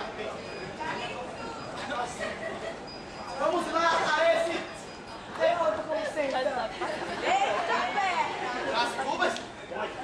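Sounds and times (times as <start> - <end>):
actors talking: 0.0 - 10.0.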